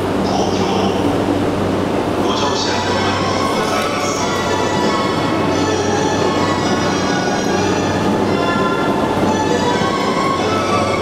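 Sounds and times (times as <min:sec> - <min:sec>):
electric train rumble: 0:00.0 - 0:11.0
high tones from train motors: 0:02.7 - 0:11.0.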